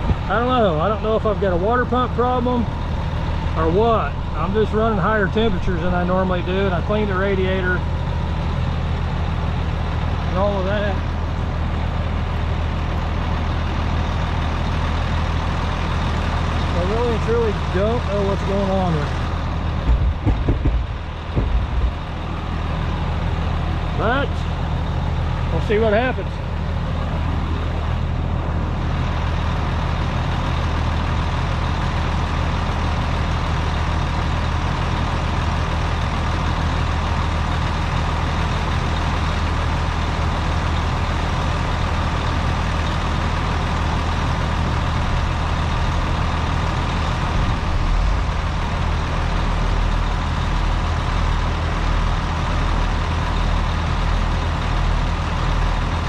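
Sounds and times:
diesel engine running: 0.0s - 56.0s.

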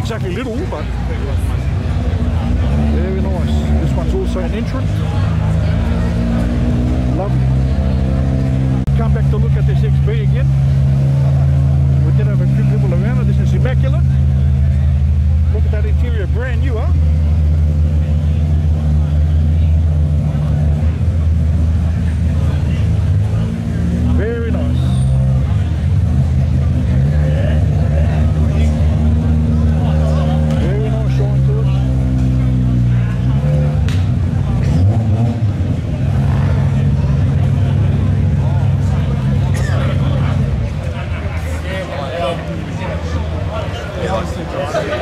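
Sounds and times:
car engine idling and revving: 0.0s - 45.0s.

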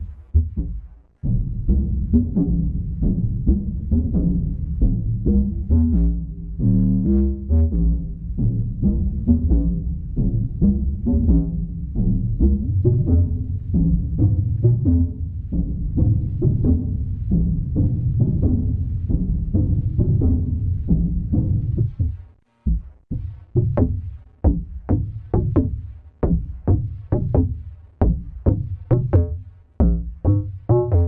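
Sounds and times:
deep synth plucked-string tones: 1.2s - 25.3s, 28.1s - 31.0s.

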